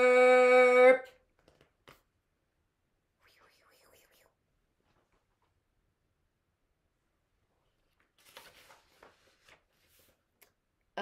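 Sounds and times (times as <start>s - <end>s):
book page turning: 7.8s - 10.4s.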